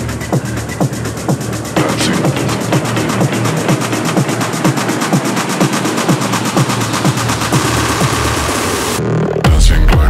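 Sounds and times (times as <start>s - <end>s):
techno music: 0.0s - 10.0s.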